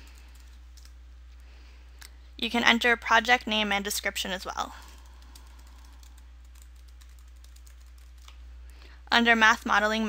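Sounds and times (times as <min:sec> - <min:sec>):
steady low hum: 0:00.0 - 0:10.0
keyboard typing clicks: 0:04.8 - 0:08.4.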